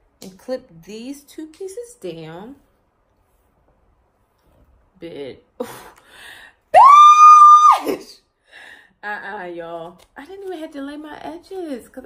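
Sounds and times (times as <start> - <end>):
woman squealing: 6.8 - 8.1.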